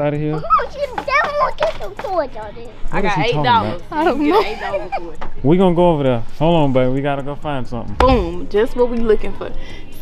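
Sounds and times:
young child's voice: 0.4s - 2.8s
people talking: 6.5s - 10.0s.

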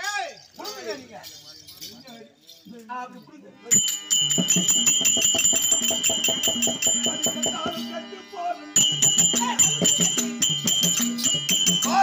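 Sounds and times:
ringing bells: 0.0s - 12.0s
fast percussion strikes: 3.7s - 8.2s, 8.8s - 12.0s.

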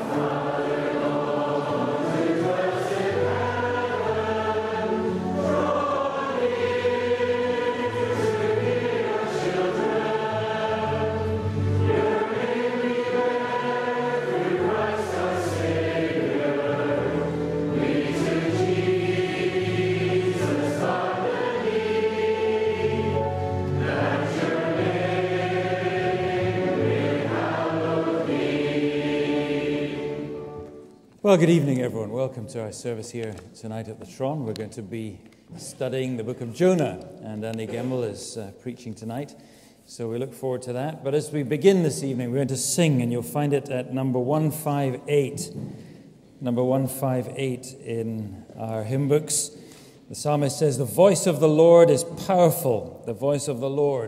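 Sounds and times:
choir singing sustained chords: 0.0s - 30.8s.

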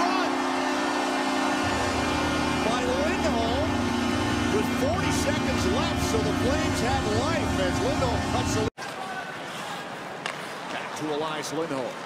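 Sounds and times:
commentator speaking: 2.6s - 3.8s, 4.5s - 8.7s.

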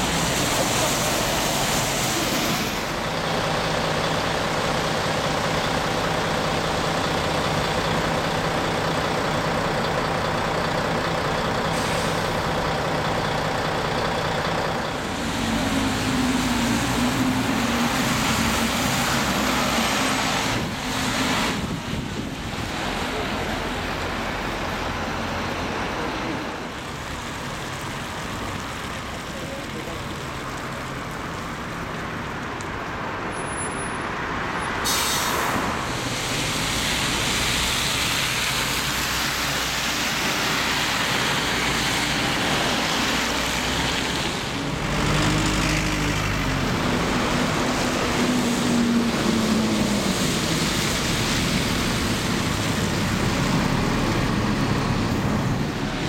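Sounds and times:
diesel bus engine pulling away: 0.0s - 56.0s
road traffic noise: 0.0s - 56.0s.

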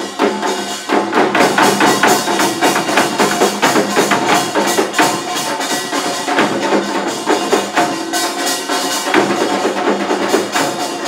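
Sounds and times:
drum beats: 0.0s - 11.0s.

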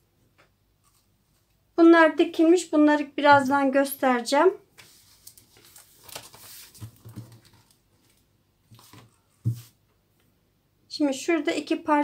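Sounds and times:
notebook pages rustling: 4.7s - 9.8s.

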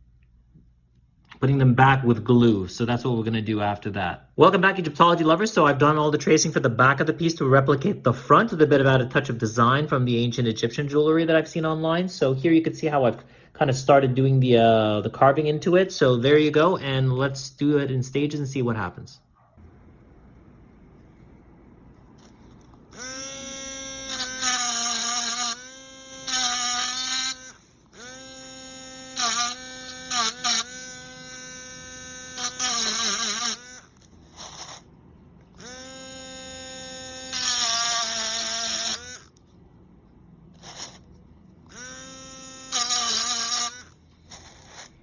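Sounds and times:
rotary tool motor whining: 22.2s - 34.9s, 35.6s - 39.4s, 40.6s - 45.0s.

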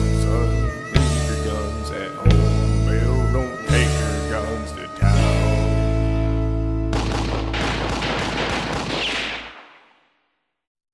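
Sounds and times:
rapid gunfire: 6.9s - 10.2s.

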